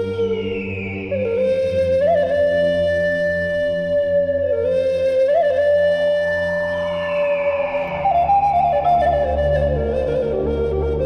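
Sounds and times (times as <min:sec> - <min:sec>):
flute holding long note: 0:00.0 - 0:11.0.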